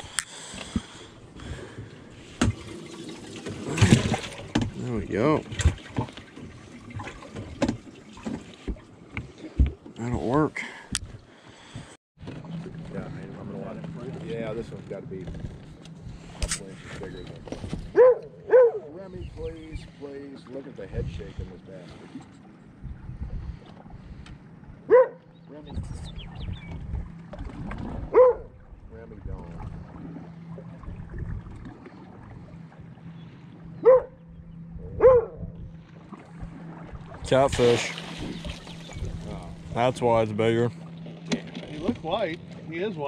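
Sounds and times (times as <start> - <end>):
steady low hum: 9.6 - 43.0
dog barking: 18.0 - 18.9, 24.9 - 25.2, 28.1 - 28.5, 33.8 - 34.2, 35.0 - 35.4.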